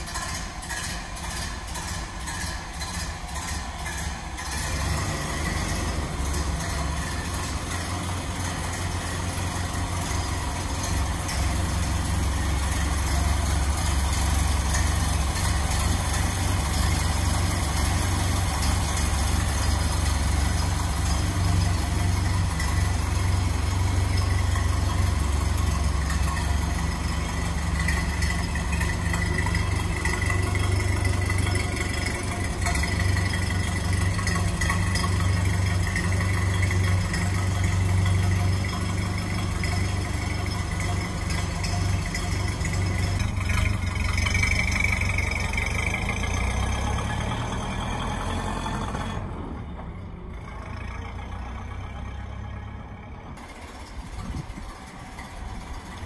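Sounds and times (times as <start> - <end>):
truck engine idling: 0.0 - 56.0.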